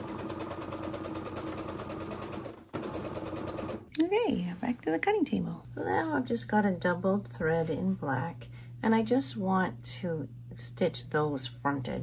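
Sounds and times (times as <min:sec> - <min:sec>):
sewing machine stitching: 0:00.0 - 0:03.9.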